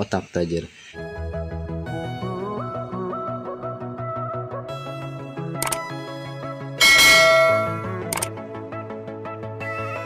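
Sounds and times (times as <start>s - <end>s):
short sharp clicks: 5.6s - 5.8s, 8.0s - 8.3s
bell-like ding: 6.8s - 8.0s.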